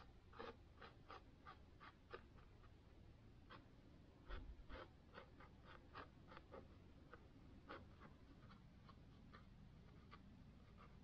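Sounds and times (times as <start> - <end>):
paint brush strokes on canvas: 0.0 - 11.0.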